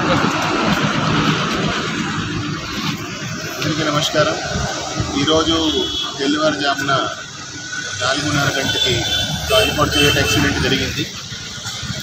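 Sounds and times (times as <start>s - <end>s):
road traffic passing: 0.0s - 12.0s.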